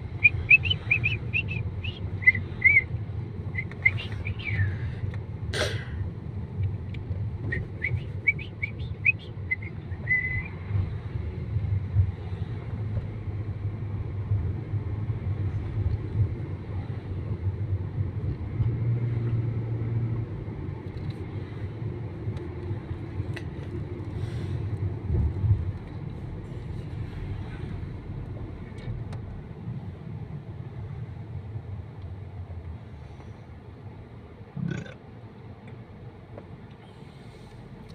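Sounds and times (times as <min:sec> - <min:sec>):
car engine and road rumble: 0:00.0 - 0:37.9.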